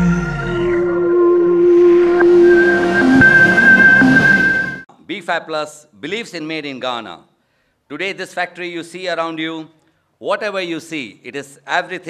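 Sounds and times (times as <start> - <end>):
higher sustained tone: 0.0 - 4.9
held electronic tones: 0.7 - 4.8
whooshing swell of noise: 0.8 - 4.8.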